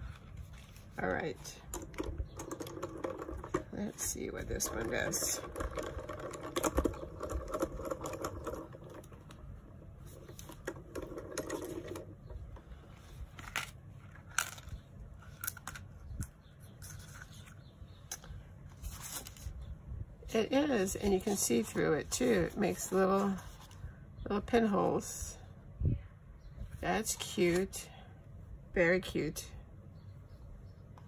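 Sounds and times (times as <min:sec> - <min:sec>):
hand-cranked machine rolling: 0:01.7 - 0:12.3.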